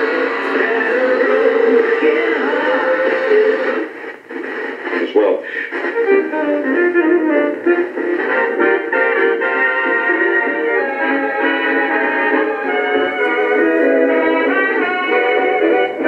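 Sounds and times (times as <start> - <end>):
radio tuning noise: 0.0 - 9.4
music from small radio speaker: 0.0 - 16.0.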